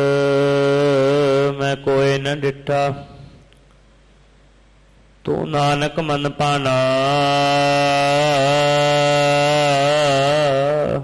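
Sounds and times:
man chanting a long note: 0:00.0 - 0:03.1, 0:05.3 - 0:11.0.

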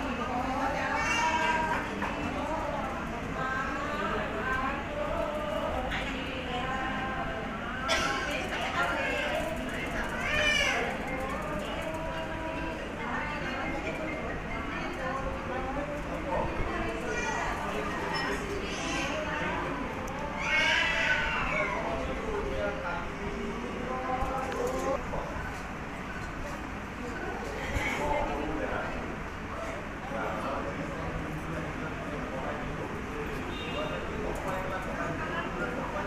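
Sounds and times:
crowd chatter: 0:00.0 - 0:36.0.

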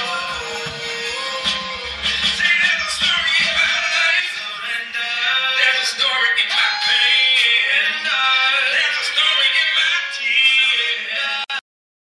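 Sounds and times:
recorded song with singing: 0:00.0 - 0:11.6.

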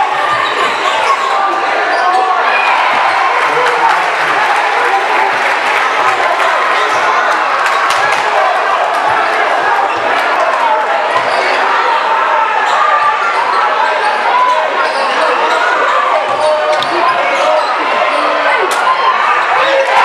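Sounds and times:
chatter of spectators: 0:00.0 - 0:20.0.

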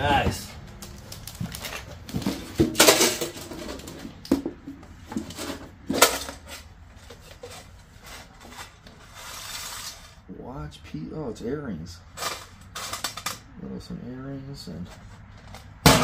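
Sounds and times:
cardboard and paper rustling: 0:00.1 - 0:04.4, 0:05.0 - 0:10.2
metal tin clacking and rattling: 0:02.2 - 0:06.7.

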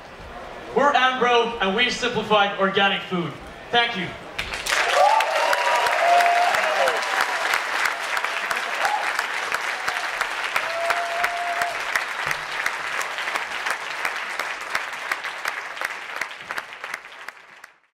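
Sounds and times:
audience applauding: 0:04.4 - 0:17.9.

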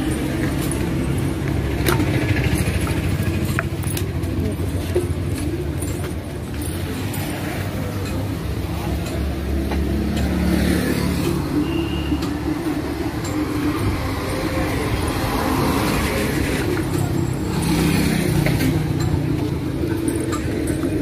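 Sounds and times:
vehicle engines passing: 0:00.0 - 0:21.0.

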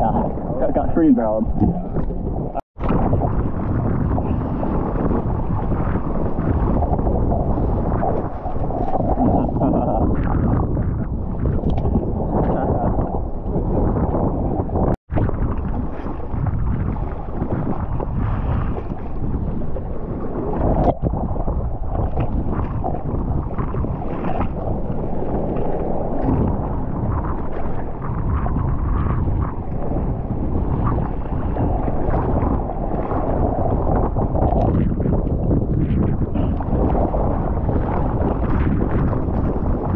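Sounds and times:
water rushing and splashing: 0:00.0 - 0:39.9
wind buffeting microphone: 0:00.0 - 0:39.9.

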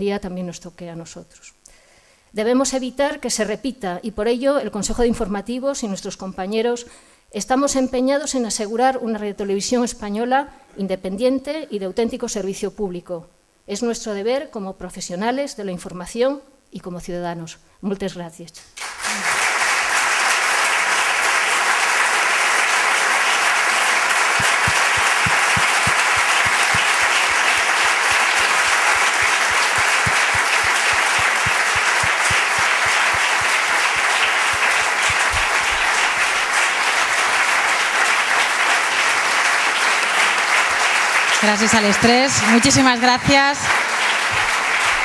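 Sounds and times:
large audience applauding: 0:18.8 - 0:45.0.

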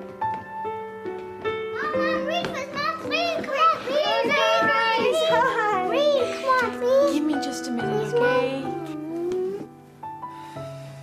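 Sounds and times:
soft background music: 0:00.0 - 0:11.0
children calling out excitedly: 0:01.8 - 0:07.4.

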